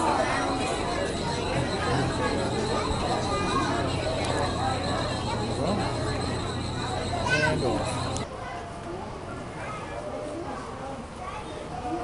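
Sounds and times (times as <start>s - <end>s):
steady hum: 0.0s - 8.2s
faint background voices: 0.0s - 12.0s.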